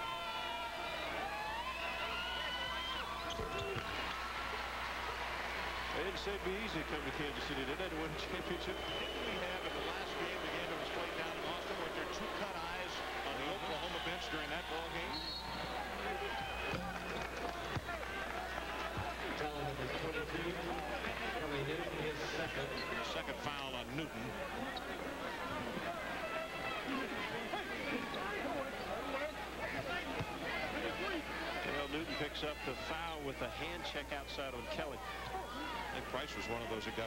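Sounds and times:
arena crowd voices: 0.0s - 37.0s
referee whistle: 8.4s - 10.0s, 13.5s - 16.9s.

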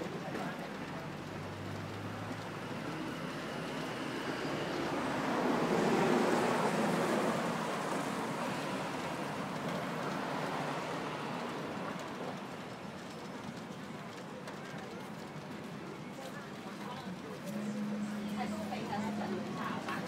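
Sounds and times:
road vehicle passing: 1.0s - 13.1s, 17.0s - 20.0s.

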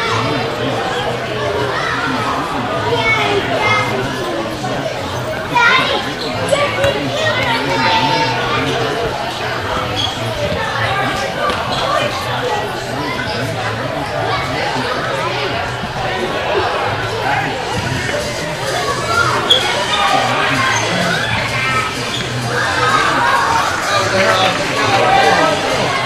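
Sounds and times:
children shouting and chattering: 0.0s - 26.0s.

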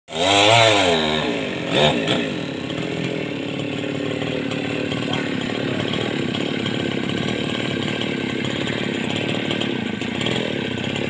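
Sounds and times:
chainsaw running: 0.1s - 11.0s.

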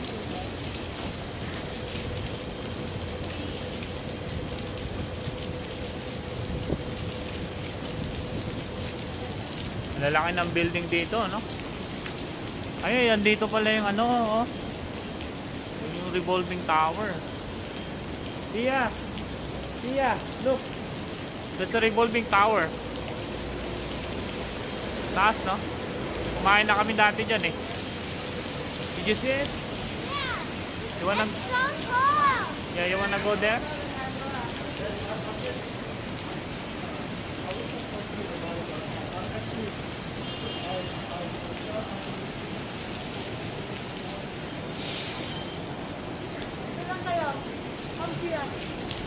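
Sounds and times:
heavy rain on pavement: 0.0s - 49.0s.

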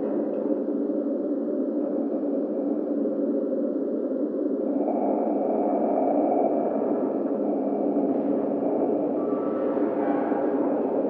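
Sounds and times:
low droning hum: 0.0s - 11.0s.

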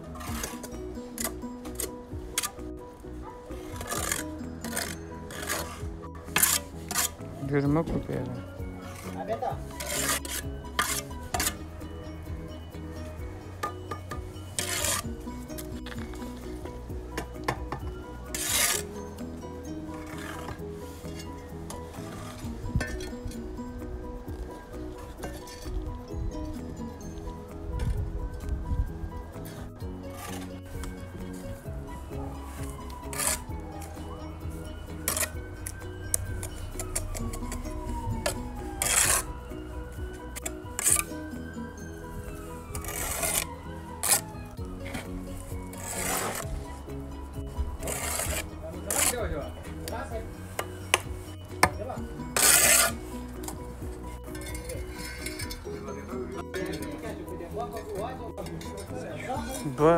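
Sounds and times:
trowel scraping mortar: 0.0s - 11.7s, 13.9s - 16.6s, 17.4s - 23.6s, 29.3s - 41.4s, 42.2s - 59.8s
background music with held notes: 0.0s - 59.9s.

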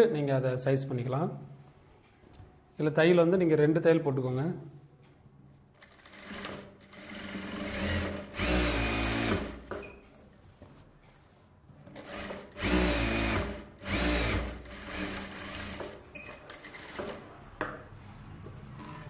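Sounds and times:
sewing machine stitching: 5.8s - 9.7s, 12.0s - 17.3s.

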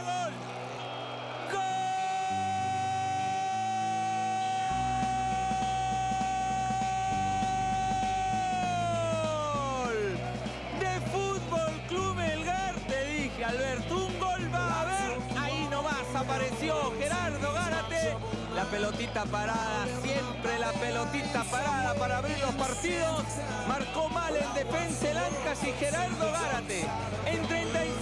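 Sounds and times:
commentator shouting: 0.0s - 0.4s, 1.4s - 28.0s
background music: 0.0s - 28.0s.

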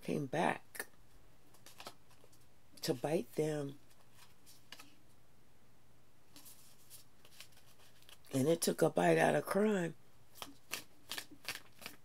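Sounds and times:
cards being shuffled: 1.5s - 2.4s, 3.8s - 5.0s, 6.3s - 8.3s, 10.3s - 12.0s.

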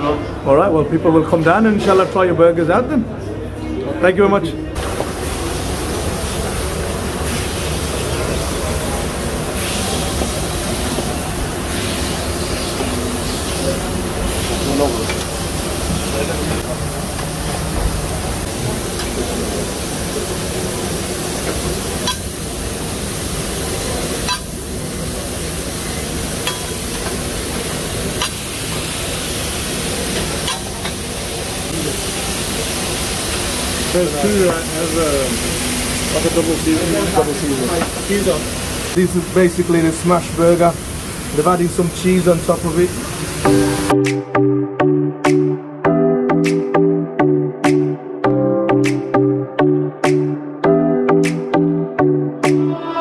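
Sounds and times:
meat sizzling on griddle: 4.8s - 16.5s, 18.4s - 43.9s.

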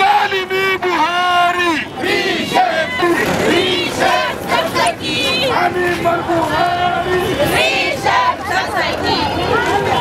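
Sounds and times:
man shouting through a megaphone: 0.0s - 3.6s, 5.2s - 7.5s
marching crowd noise: 0.0s - 10.0s.

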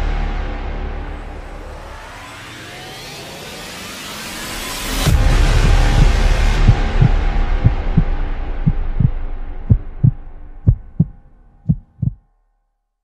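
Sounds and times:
heartbeat double thumps: 5.5s - 12.2s.

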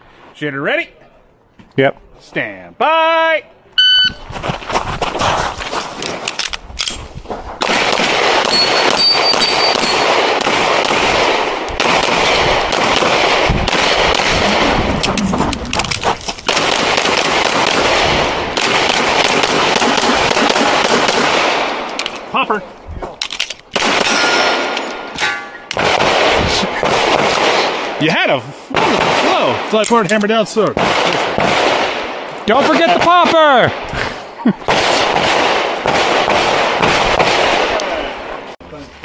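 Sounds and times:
shot timer beep: 3.8s - 4.2s, 8.5s - 10.1s
handgun firing rapid shots: 7.6s - 14.7s, 16.5s - 21.8s, 23.7s - 27.8s, 34.7s - 37.8s.

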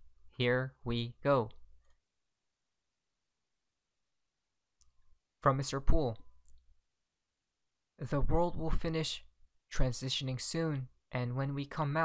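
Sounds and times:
person speaking: 0.0s - 1.7s, 5.4s - 6.6s, 8.0s - 12.0s.

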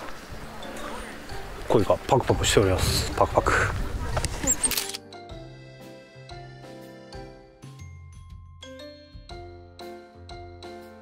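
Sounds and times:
voices outdoors: 0.0s - 5.0s
soft mallet-like music: 0.2s - 3.1s, 3.9s - 11.0s.

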